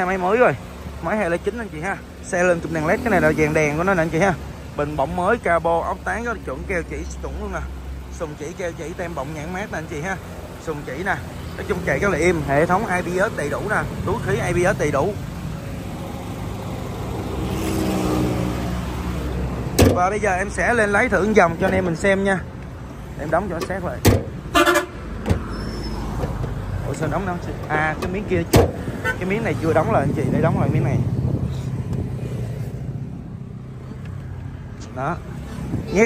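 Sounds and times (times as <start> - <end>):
car bonnet shutting thud: 19.7 - 20.0, 24.0 - 24.4, 28.0 - 28.8.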